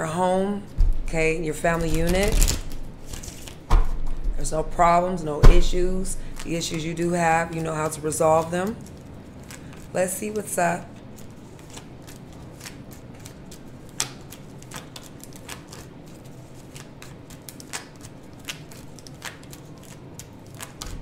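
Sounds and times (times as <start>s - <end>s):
cards being shuffled: 0.9s - 4.3s, 10.9s - 21.0s.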